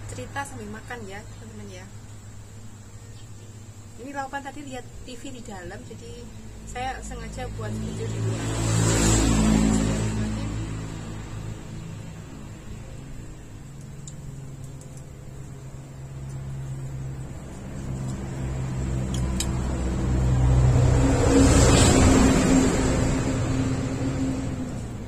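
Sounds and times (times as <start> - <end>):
vehicle engine passing by: 6.6 - 13.7, 15.7 - 25.0.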